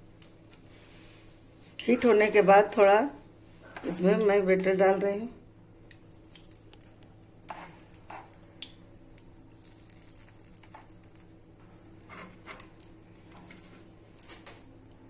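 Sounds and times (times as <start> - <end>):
faint steady hum: 0.0 - 15.0
wet dabs of batter: 6.0 - 11.3.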